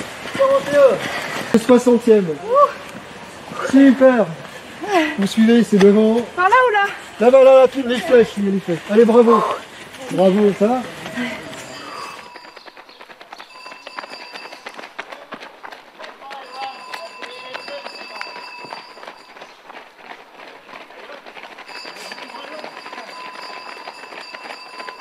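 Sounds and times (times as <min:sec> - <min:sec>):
runners' footsteps on pavement: 0:00.0 - 0:25.0
faint voices: 0:07.8 - 0:12.4.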